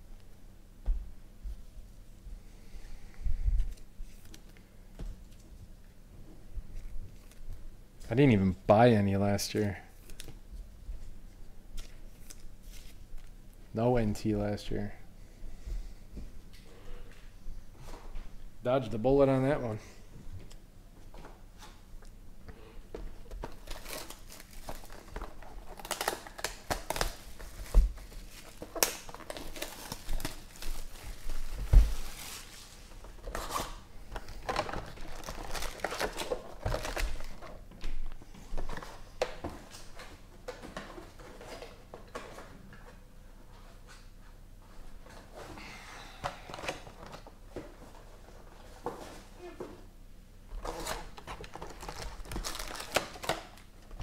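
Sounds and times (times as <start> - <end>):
shrink wrap crinkling and tearing: 6.7 - 7.6, 11.7 - 13.3, 23.4 - 37.6, 50.6 - 53.7
foil packs rustling: 23.4 - 37.6, 50.6 - 53.7.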